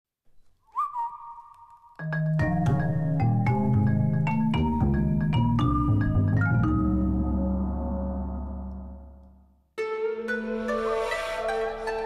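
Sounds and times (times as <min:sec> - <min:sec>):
whistled note swooping up: 0:10.0 - 0:12.0.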